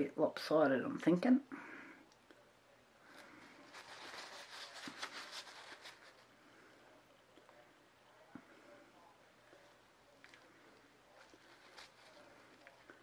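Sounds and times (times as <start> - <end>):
paper towel rustling and crinkling: 3.1 - 6.3, 11.1 - 13.0.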